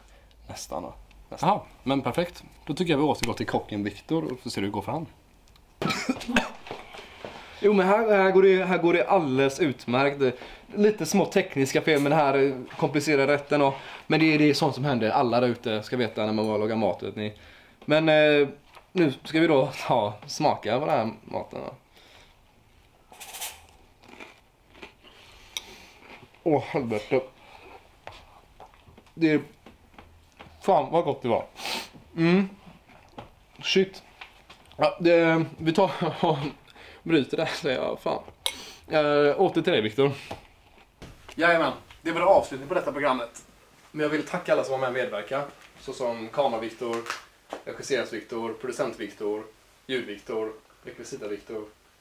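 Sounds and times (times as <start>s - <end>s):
man coughing: 5.8s - 6.9s.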